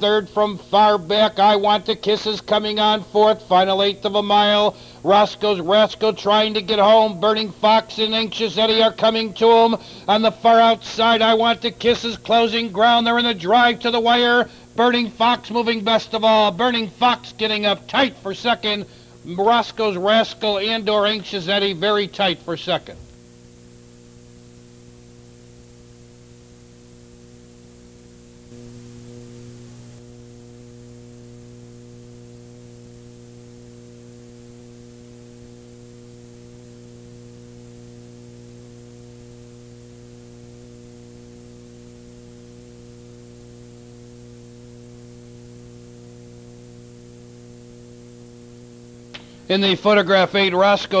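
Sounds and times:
electrical mains hum: 0:00.0 - 0:51.0
faint hiss: 0:03.4 - 0:12.8.

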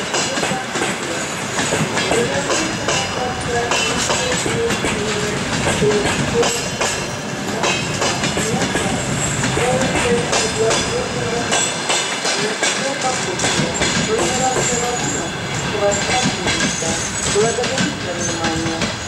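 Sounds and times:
train wheels clattering over rail joints: 0:00.0 - 0:19.0
wheels squealing on rails: 0:00.0 - 0:19.0.

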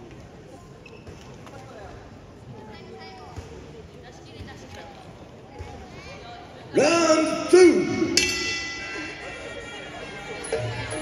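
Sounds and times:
indistinct voices calling out: 0:06.8 - 0:11.0.

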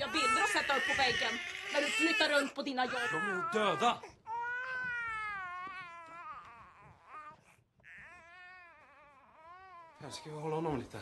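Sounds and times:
infant crying: 0:00.0 - 0:10.4.

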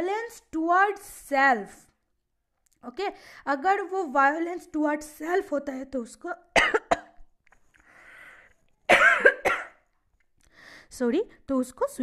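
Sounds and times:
woman coughing: 0:06.5 - 0:07.2, 0:08.9 - 0:09.8
faint breath in: 0:07.8 - 0:08.6, 0:10.5 - 0:10.9.

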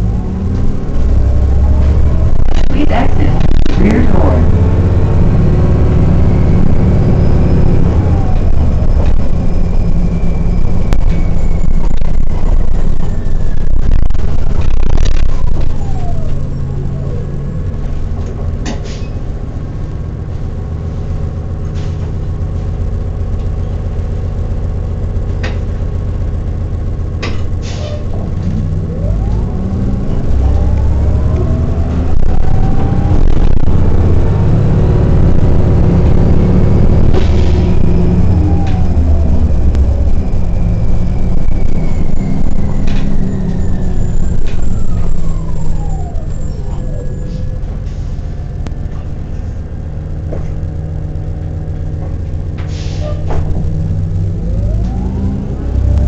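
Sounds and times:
bus drivetrain rumble: 0:00.0 - 0:56.0
bus whine: 0:00.0 - 0:56.0.

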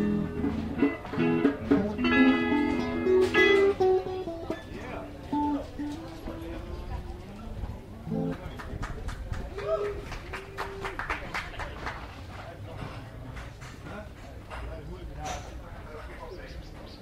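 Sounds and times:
electric and acoustic guitars: 0:00.0 - 0:07.2, 0:07.8 - 0:08.6.

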